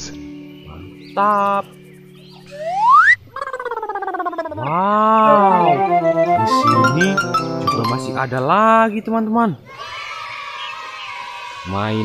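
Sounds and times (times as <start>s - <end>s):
rising whistle-like glide: 2.5s - 3.2s.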